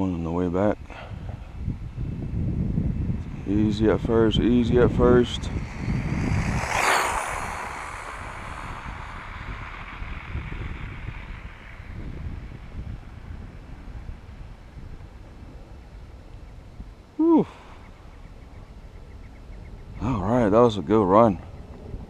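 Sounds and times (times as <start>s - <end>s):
wind rumble: 0.0s - 22.0s
rc car motor whine: 5.1s - 12.4s.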